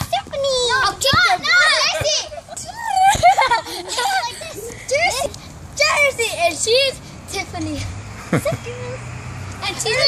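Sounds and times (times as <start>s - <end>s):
girls shouting squealing and laughing: 0.6s - 6.6s.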